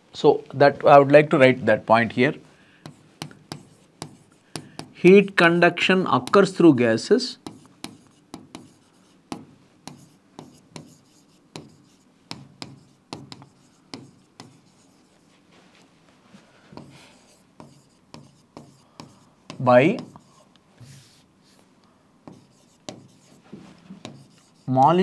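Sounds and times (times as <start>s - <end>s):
chalk tapping and scraping: 2.8s - 15.9s, 16.6s - 25.0s.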